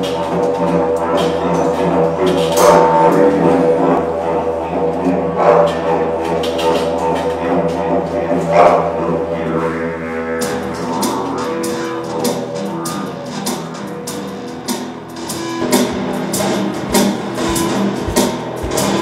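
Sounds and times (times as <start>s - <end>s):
didgeridoo drone: 0.0s - 19.0s
instrumental music: 0.0s - 19.0s.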